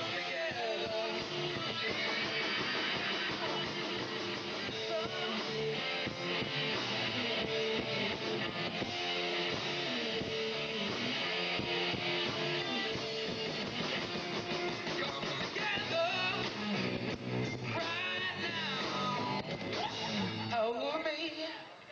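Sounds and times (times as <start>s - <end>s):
rock band playing live: 0.0s - 20.7s
electric guitar: 0.0s - 20.8s.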